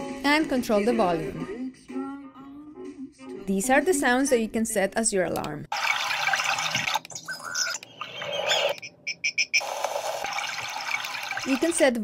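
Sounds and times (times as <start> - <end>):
chirping alarm tones: 5.8 - 11.8.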